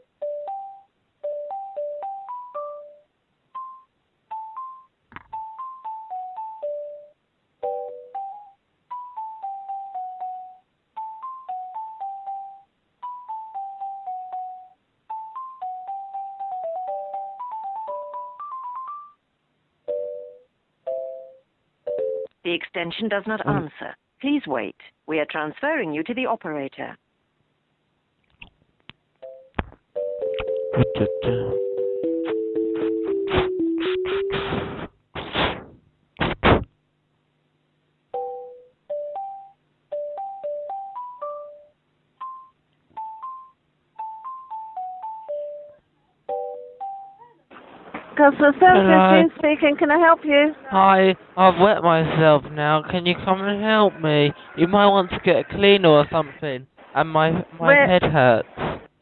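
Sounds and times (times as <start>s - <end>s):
telephone hold music: 0.0s - 19.2s, 29.2s - 34.9s, 38.1s - 47.2s
electronic hold music: 30.0s - 34.8s.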